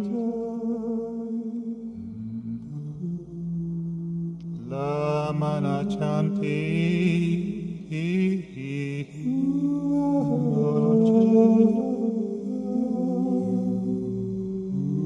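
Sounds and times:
low held tone: 1.9s - 15.0s
man chanting sung syllables: 4.4s - 15.0s.

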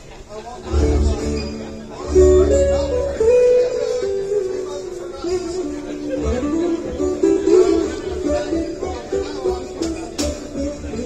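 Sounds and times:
acoustic guitar rhythm: 0.6s - 11.0s
fiddle melody: 0.6s - 11.0s.

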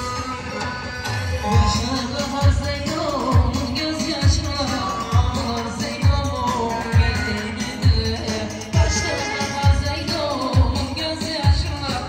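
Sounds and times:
folk-pop music with lute and keyboard: 0.0s - 12.0s
man singing into a microphone: 0.0s - 12.0s
deep bass drum beat: 1.4s - 12.0s.

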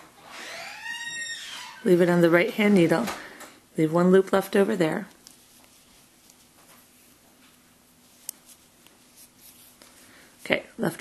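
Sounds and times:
woman speaking: 1.8s - 3.2s, 3.8s - 5.2s, 10.4s - 11.0s.

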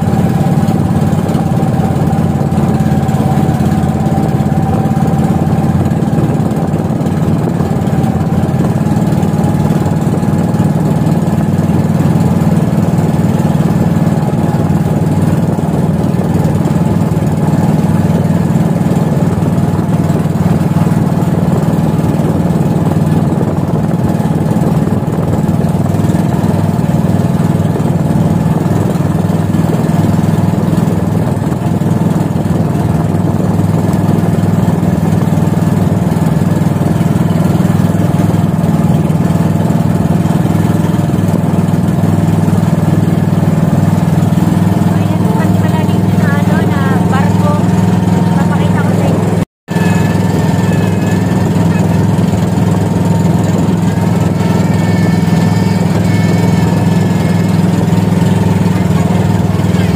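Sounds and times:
boat engine droning: 0.0s - 59.9s.

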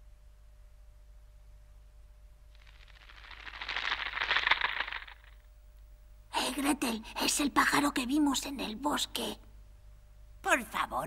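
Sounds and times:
dense crackling rustling: 2.5s - 5.4s.

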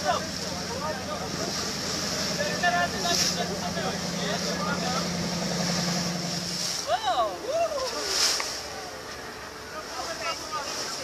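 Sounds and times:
water rushing past hull: 0.0s - 11.0s.

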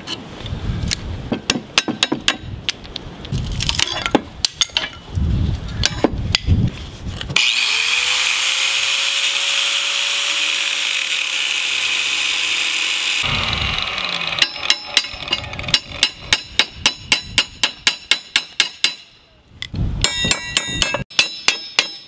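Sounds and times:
angle grinder grinding metal: 7.4s - 16.4s
hammer tapping on metal: 20.0s - 22.0s.

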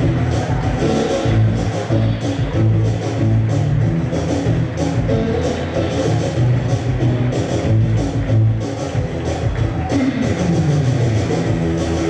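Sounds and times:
rock music led by guitar: 0.0s - 12.0s.

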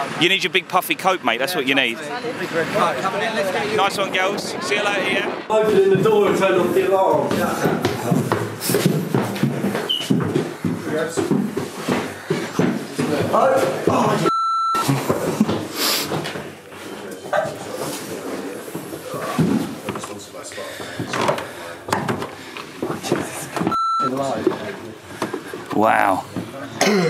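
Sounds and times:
people talking indistinctly: 0.0s - 27.0s
short high beep: 14.3s - 14.9s, 23.8s - 24.2s.

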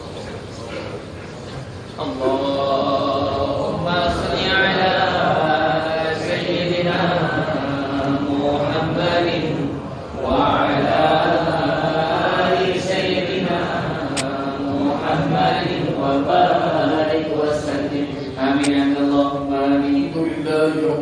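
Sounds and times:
man chanting melodically: 2.0s - 21.0s.

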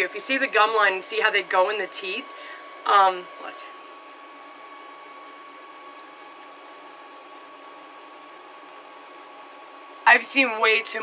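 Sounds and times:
faint high-pitched hum: 0.0s - 11.0s.

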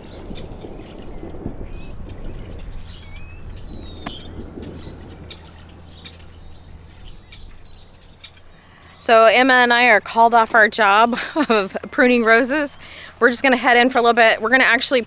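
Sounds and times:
distant thunder rumbling: 0.0s - 15.0s
small birds chirping: 0.0s - 15.0s.

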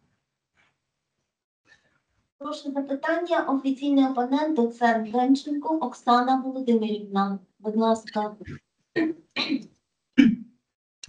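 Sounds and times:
person clearing throat: 9.0s - 10.5s.

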